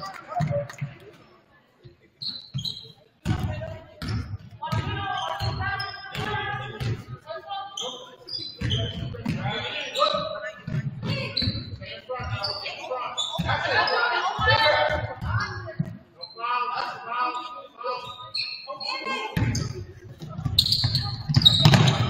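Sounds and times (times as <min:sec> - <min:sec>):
basketball bouncing on hardwood floor: 0:20.4 - 0:22.0.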